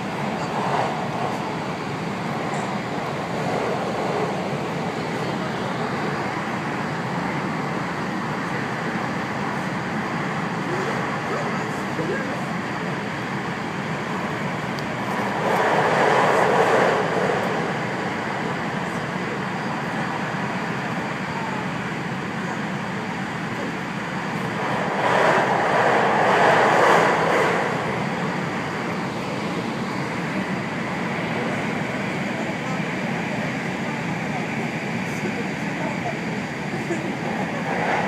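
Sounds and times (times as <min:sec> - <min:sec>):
train cabin running noise: 0:00.0 - 0:38.0.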